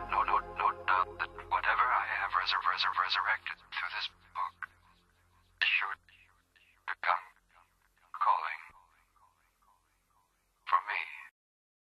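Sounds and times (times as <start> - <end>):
whispered voice: 10.7 - 11.3.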